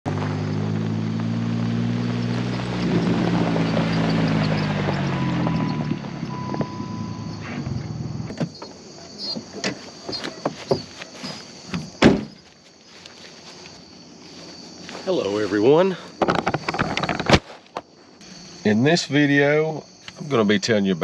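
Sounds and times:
car engine running: 0.0s - 9.0s
steady beep: 5.1s - 7.4s
car door opening: 5.5s - 12.4s
person stepping out: 5.8s - 17.9s.

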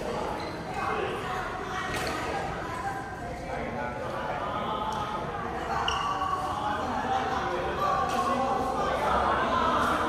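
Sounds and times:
people chatting in echoing hall: 0.0s - 10.0s.

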